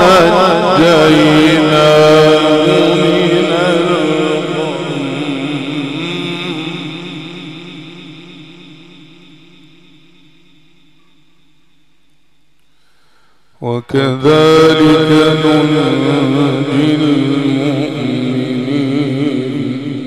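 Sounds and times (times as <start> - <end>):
man reciting melodically: 0.0 - 10.9, 13.5 - 20.0.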